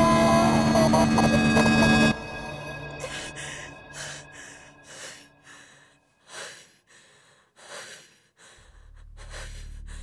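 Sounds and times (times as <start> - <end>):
harsh distorted electronic drone: 0.0 - 3.3.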